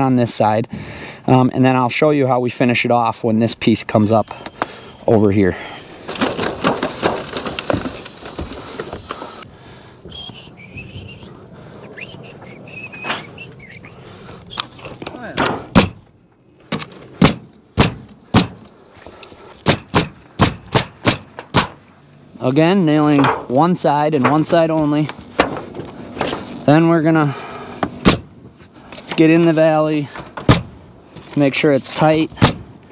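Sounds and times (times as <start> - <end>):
pneumatic nailer shots: 6.0 - 9.4, 15.4 - 16.1, 16.7 - 18.6, 19.6 - 21.8, 27.9 - 28.3, 30.4 - 30.8, 32.4 - 32.7.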